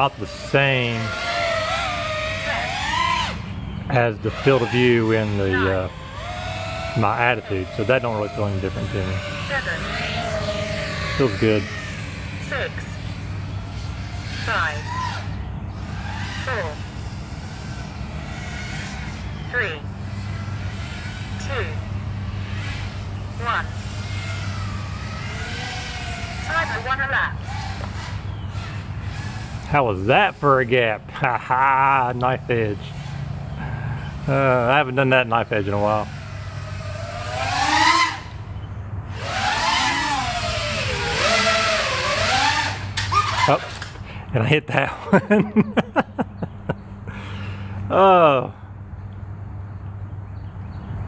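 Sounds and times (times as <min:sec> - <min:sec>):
drone motors and propellers whining: 0:00.0 - 0:51.0
steady low hum: 0:00.0 - 0:51.0.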